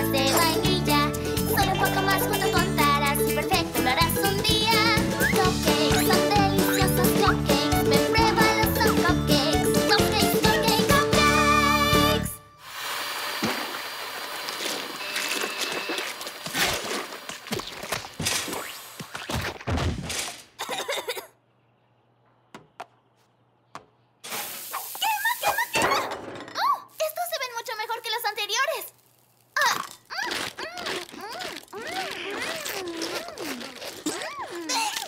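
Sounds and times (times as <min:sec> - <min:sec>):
hissing burst: 0:24.2 - 0:25.8.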